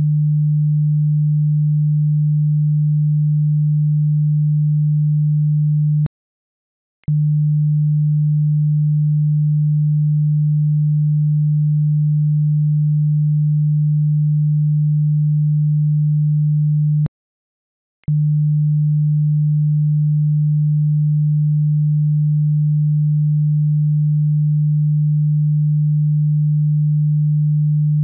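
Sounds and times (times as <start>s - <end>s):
low sine test tone: 0.0s - 6.1s, 7.1s - 17.1s, 18.1s - 28.0s.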